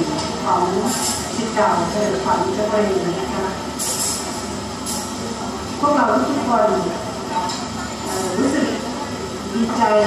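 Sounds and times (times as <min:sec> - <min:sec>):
woman speaking over loudspeaker: 0:00.0 - 0:03.6, 0:05.8 - 0:07.5, 0:08.1 - 0:08.9, 0:09.5 - 0:10.0.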